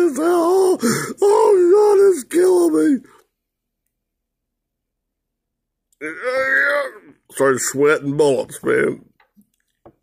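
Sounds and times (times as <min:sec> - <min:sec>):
man groaning in strain: 0:06.0 - 0:07.2.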